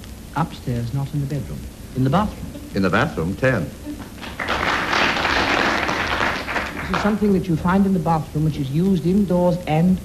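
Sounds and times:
audience applause: 0:04.1 - 0:07.3.

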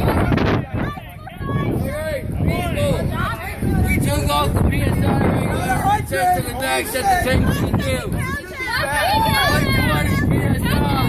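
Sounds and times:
people talking and calling out: 0:00.0 - 0:11.0
wind buffeting microphone: 0:00.0 - 0:11.0.

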